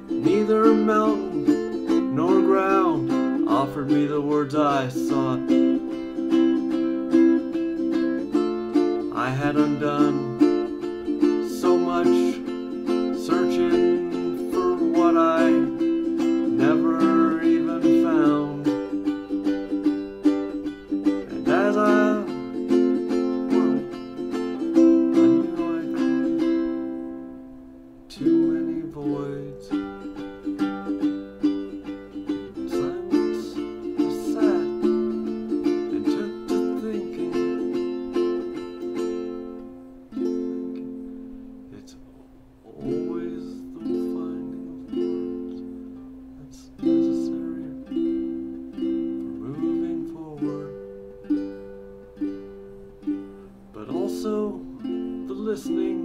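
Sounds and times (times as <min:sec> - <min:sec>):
ukulele strumming chords: 0:00.0 - 0:56.0.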